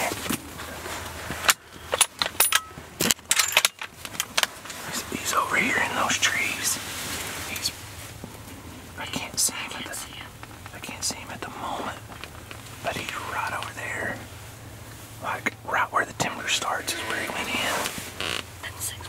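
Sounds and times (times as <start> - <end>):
people whispering: 0.0 - 0.3, 4.7 - 8.0, 8.8 - 12.2, 12.8 - 14.3, 15.2 - 18.0, 18.6 - 19.0
clicks and knocks handling gear: 1.3 - 4.8.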